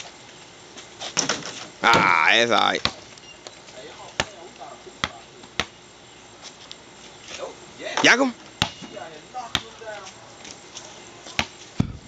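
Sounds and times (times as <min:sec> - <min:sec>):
basketball bouncing on pavement: 0:01.0 - 0:03.1, 0:04.1 - 0:05.8, 0:08.4 - 0:10.2, 0:11.2 - 0:12.0.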